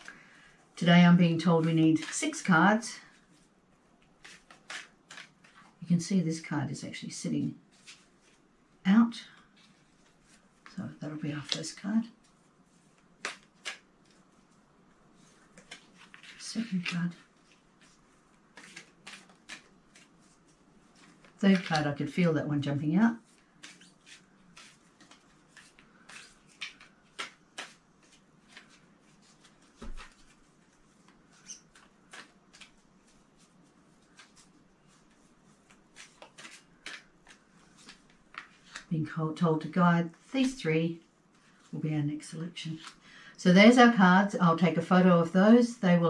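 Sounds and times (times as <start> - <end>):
cards clicking and tapping: 4.2 - 5.6, 13.2 - 14.2, 18.5 - 20.1, 23.6 - 30.3, 31.2 - 32.8, 34.0 - 38.9.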